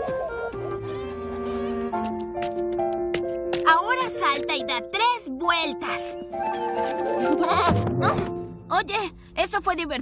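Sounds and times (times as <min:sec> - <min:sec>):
background music with held notes: 0:00.0 - 0:08.7
cartoon lamb bleating: 0:07.3 - 0:08.2.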